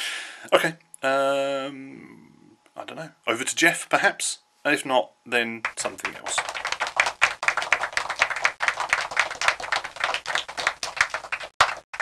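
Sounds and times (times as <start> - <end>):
hand clapping: 5.6 - 12.0.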